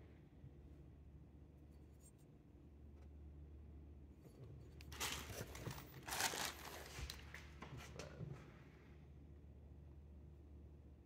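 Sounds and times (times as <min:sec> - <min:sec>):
packaging rustling and crinkling: 0:04.9 - 0:07.6.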